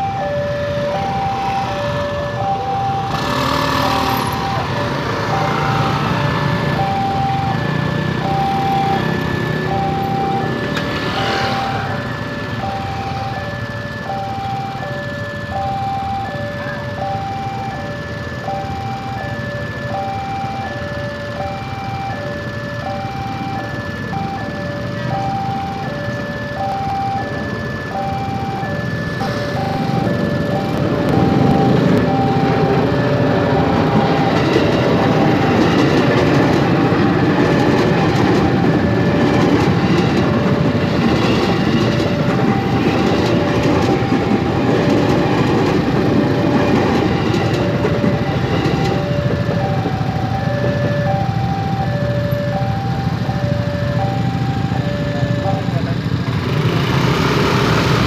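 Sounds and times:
electric train rumbling: 0:00.0 - 0:58.0
level crossing warning bell: 0:00.0 - 0:58.0.

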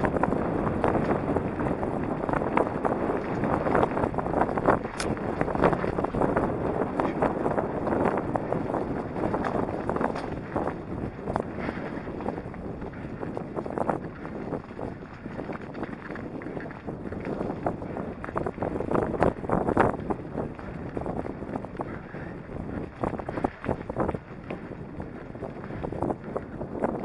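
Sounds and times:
bike tyres crunching on gravel: 0:00.0 - 0:27.0
stones clicking and bike rattling: 0:00.0 - 0:27.0.

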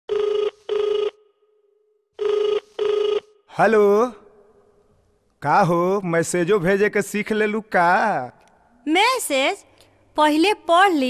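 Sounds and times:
telephone ringing: 0:00.1 - 0:01.2, 0:02.2 - 0:03.4.

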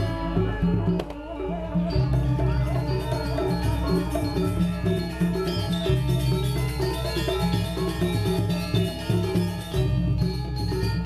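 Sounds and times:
metallophones ringing: 0:01.8 - 0:11.0.

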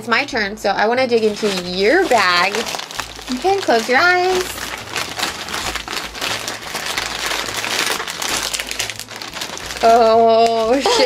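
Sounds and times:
plastic bag crinkling: 0:01.2 - 0:11.0.

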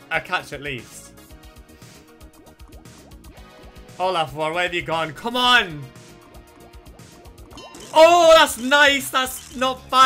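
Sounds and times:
slot game background music: 0:00.0 - 0:10.0
bubbly dripping water effects: 0:01.3 - 0:04.0, 0:05.9 - 0:08.5
quick ticks of spinning reels: 0:07.6 - 0:09.8.

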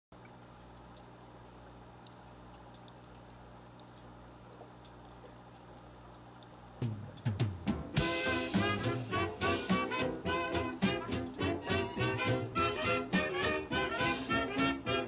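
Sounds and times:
water trickling and dripping: 0:00.1 - 0:15.0
low steady hum: 0:00.2 - 0:09.2
swing music: 0:06.8 - 0:15.0.

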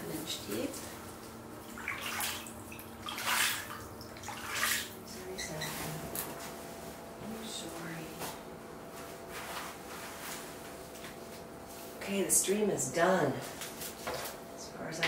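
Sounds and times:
hand swishing through water: 0:01.8 - 0:04.9.

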